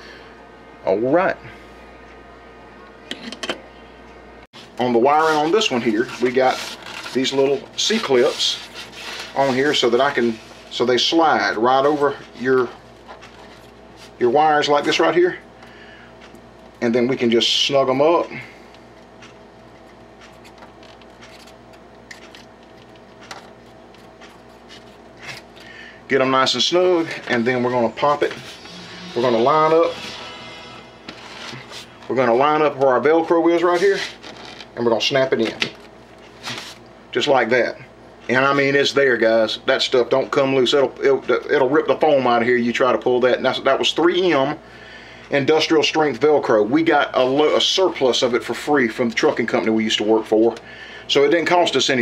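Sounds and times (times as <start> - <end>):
steady low hum: 0.0 - 52.0.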